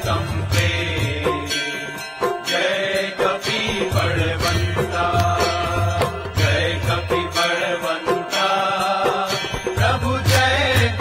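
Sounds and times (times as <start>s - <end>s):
bells striking a steady beat: 0.0s - 11.0s
chanted devotional melody: 0.0s - 11.0s
drums beating: 2.2s - 11.0s.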